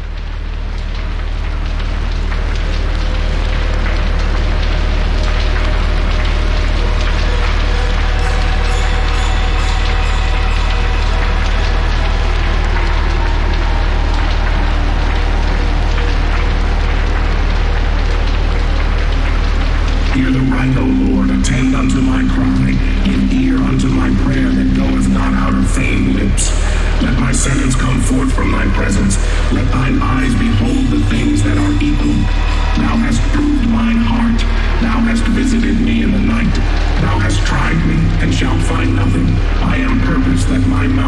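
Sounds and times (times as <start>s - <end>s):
deep steady drone: 0.0s - 41.0s
dense rain-like crackling: 0.0s - 41.0s.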